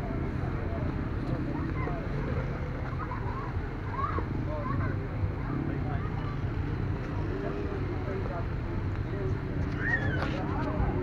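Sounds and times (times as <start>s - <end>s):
distant children's voices: 0.0s - 8.3s, 9.1s - 11.0s.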